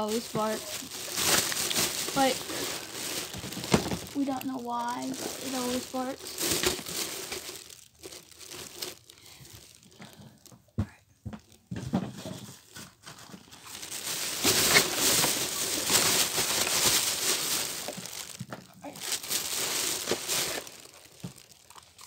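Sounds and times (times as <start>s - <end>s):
plastic bag crinkling: 0.0s - 10.5s, 11.4s - 22.0s.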